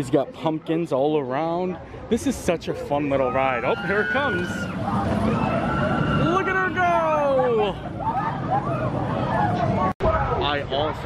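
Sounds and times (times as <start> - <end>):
roller coaster train rumbling: 2.3 - 11.0
long falling cry: 3.5 - 8.9.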